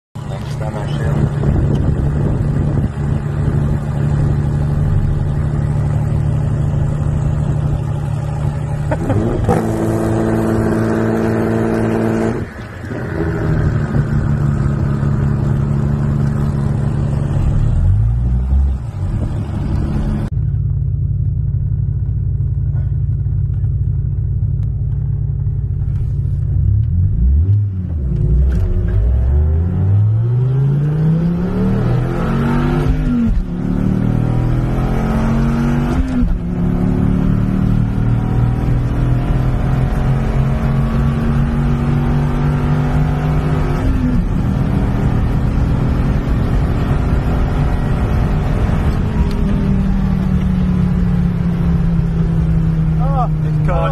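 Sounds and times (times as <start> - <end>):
car engines droning: 0.2 - 53.9
car accelerating hard: 0.3 - 20.3, 26.8 - 53.9.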